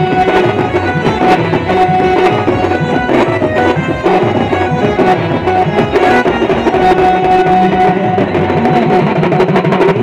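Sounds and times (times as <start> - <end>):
band music with fast drum beat: 0.0 - 10.0
held melody line: 0.0 - 10.0.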